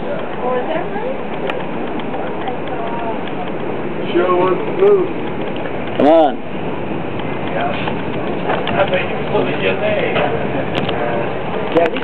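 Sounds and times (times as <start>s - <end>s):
faint voices: 0.0s - 6.5s
moving train running noise: 0.0s - 12.0s.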